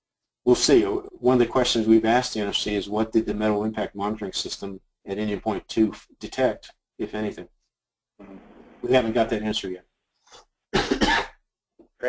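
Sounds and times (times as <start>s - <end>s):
person coughing: 10.8s - 11.4s.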